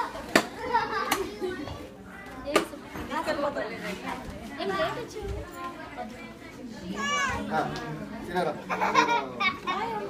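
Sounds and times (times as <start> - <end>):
indistinct voices in a room: 0.0 - 10.0.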